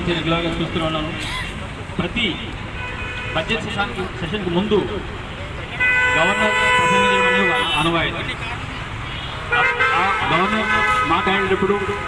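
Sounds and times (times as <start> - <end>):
man speaking into a microphone: 0.0 - 2.7, 3.3 - 5.2, 6.0 - 8.6, 9.4 - 12.0.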